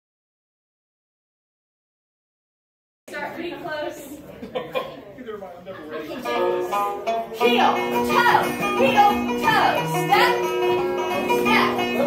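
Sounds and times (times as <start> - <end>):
people talking quietly: 3.1 - 7.7
polka dance music: 6.0 - 12.0.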